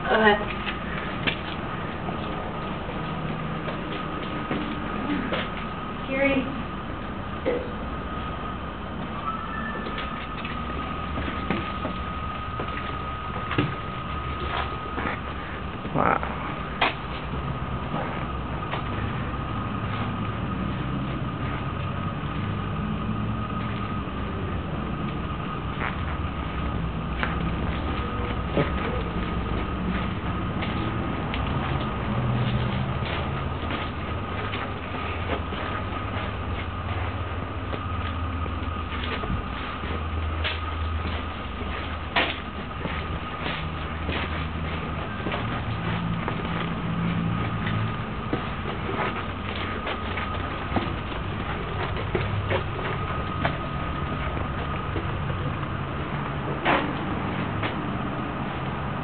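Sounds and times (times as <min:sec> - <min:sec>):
constant thin whine: 0:00.0 - 0:59.0
steady low rumble: 0:00.0 - 0:59.0
footsteps and handling clicks: 0:00.4 - 0:05.8, 0:09.8 - 0:15.9, 0:25.0 - 0:58.0.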